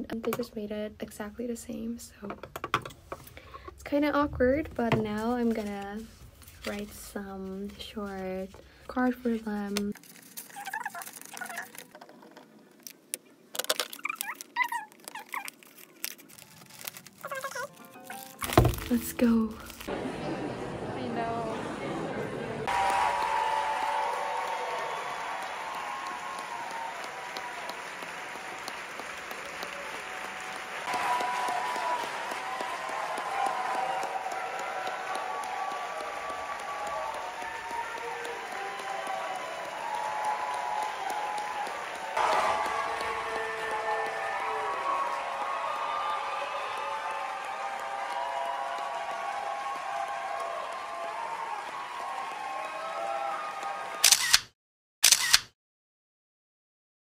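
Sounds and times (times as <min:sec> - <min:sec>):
people cheering: 0:16.3 - 0:54.3
audience applauding: 0:18.6 - 0:54.2.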